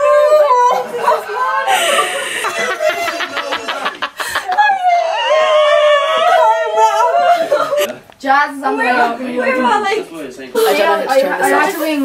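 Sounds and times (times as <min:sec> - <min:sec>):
woman wailing cry: 0:04.4 - 0:07.9.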